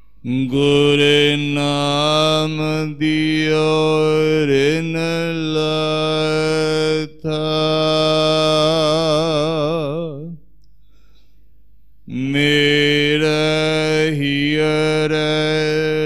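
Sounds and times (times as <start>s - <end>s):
man chanting through microphone: 0.2s - 10.4s, 12.1s - 16.0s.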